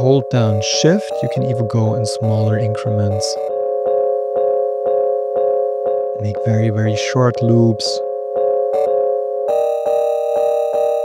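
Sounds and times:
looped keyboard chord: 0.0s - 11.0s.

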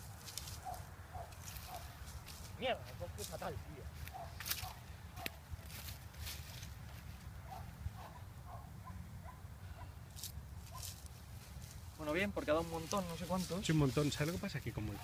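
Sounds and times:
footsteps through dry grass: 0.0s - 8.3s, 10.0s - 15.0s.

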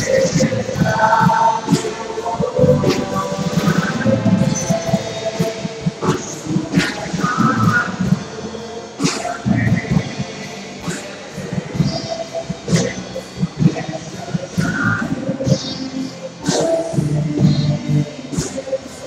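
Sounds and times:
keyboard playing: 0.0s - 19.0s.

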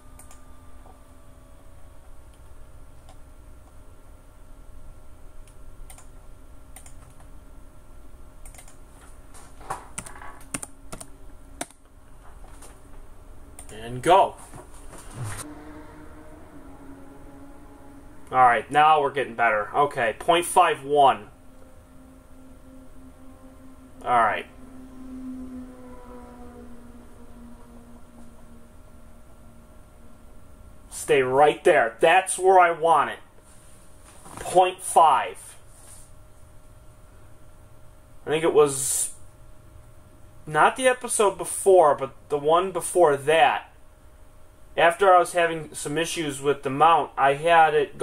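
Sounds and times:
faint steady hum: 0.0s - 48.0s
typing on computer keyboard: 8.4s - 8.8s.

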